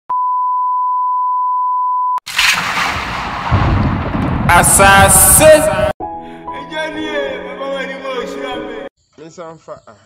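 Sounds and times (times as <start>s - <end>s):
steady test tone beep: 0.1s - 2.2s.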